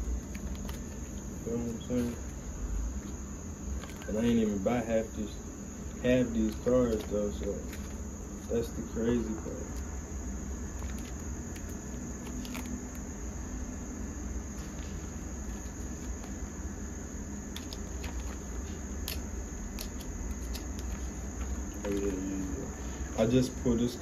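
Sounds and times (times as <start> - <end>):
high-pitched insect chorus: 0.0 - 24.0
plastic binder pages rustling: 0.1 - 2.4, 3.0 - 4.6, 6.2 - 9.9, 10.7 - 13.0, 14.5 - 16.4, 17.5 - 22.2.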